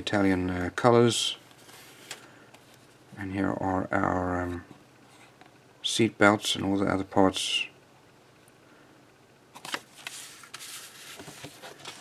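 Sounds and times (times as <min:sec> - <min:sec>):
paper rustling: 0:09.6 - 0:12.0.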